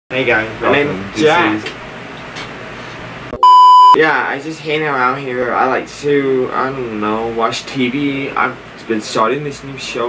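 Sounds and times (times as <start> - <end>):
electronic censor bleep: 3.4 - 4.0.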